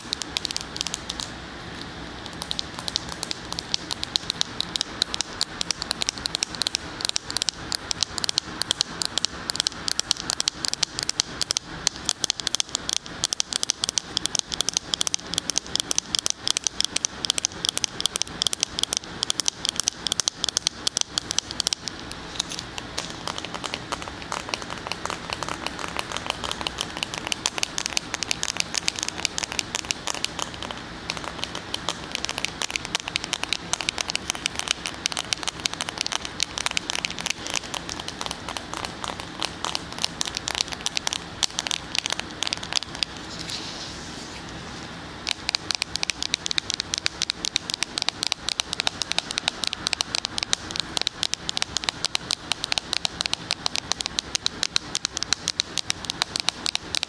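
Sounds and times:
fingers tapping on phone case: 0.0 - 1.3, 2.3 - 43.2, 45.3 - 57.0.

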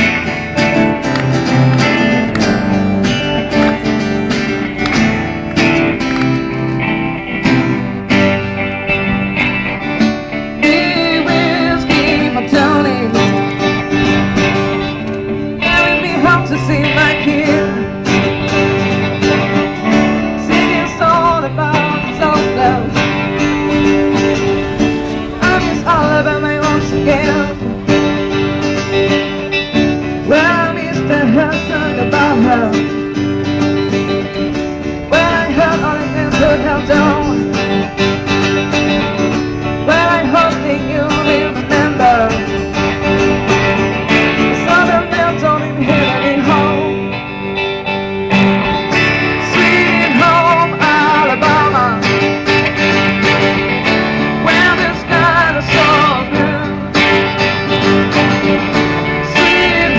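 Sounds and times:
electric and acoustic guitars: 0.0 - 59.9.

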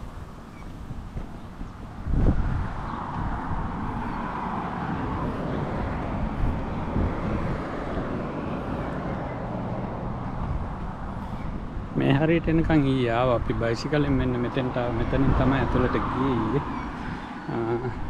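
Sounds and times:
road traffic: 0.0 - 18.0.

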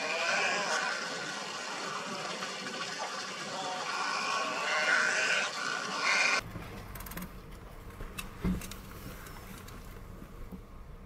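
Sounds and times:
egrets croaking: 0.0 - 6.4.

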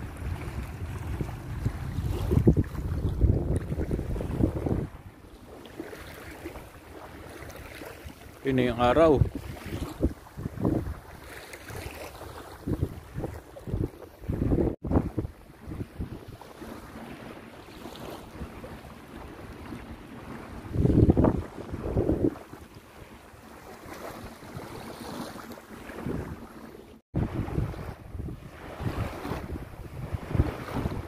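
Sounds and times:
wind buffeting microphone: 0.0 - 5.6, 6.4 - 26.6, 27.2 - 31.0
small waves on shore: 0.0 - 31.0.

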